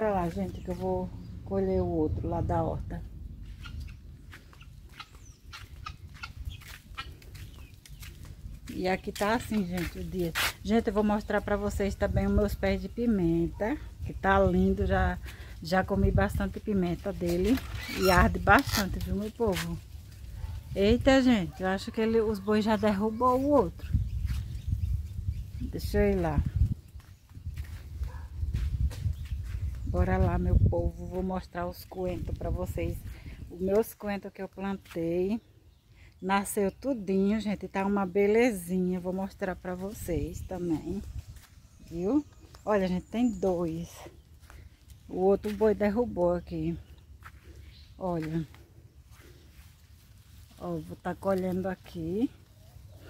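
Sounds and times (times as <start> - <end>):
faint footsteps: 0.0 - 1.4, 3.0 - 11.5, 22.2 - 25.3, 26.1 - 30.6, 39.0 - 53.0
steady low rumble: 0.0 - 13.1
wind rumble: 0.0 - 33.8, 39.5 - 46.2
high bird chirp: 3.4 - 8.2.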